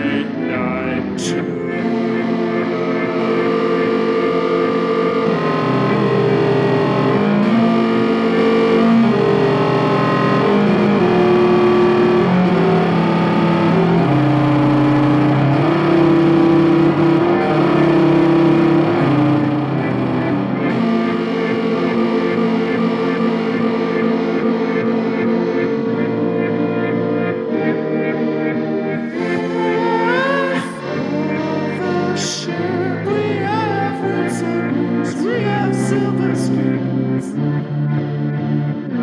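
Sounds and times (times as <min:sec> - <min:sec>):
electronic pop music: 0:00.0 - 0:39.0.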